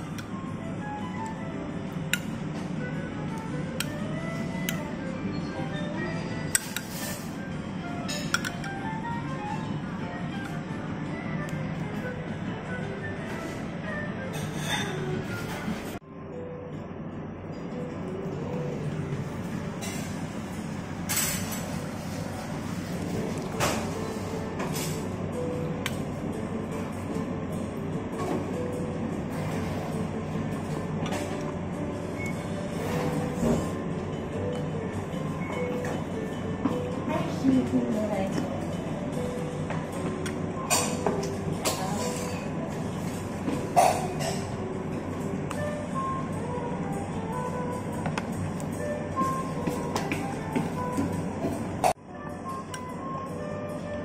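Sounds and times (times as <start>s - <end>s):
background music: 0.0s - 54.0s
restaurant room hum: 0.0s - 54.0s.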